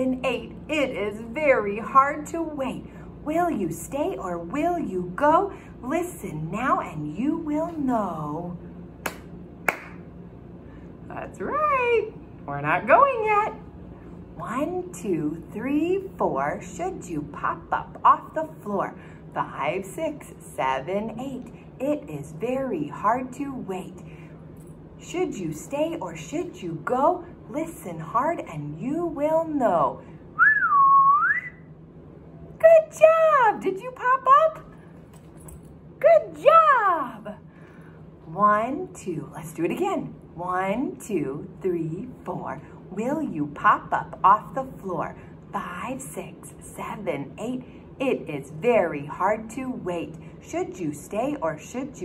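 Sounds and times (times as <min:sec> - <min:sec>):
finger snaps: 0:09.0 - 0:10.0
person whistling rising note: 0:30.4 - 0:31.6.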